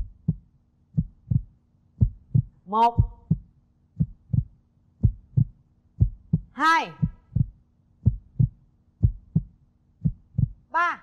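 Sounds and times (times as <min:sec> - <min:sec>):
heartbeat thumps: 0:00.0 - 0:10.7
faint steady hum: 0:00.0 - 0:11.0.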